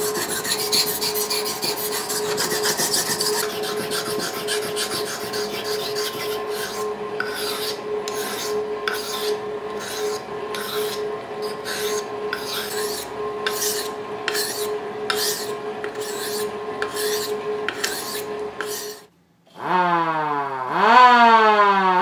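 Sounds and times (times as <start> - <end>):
knife sharpening on whetstone: 0.0 - 19.0
steady hum: 0.0 - 19.1.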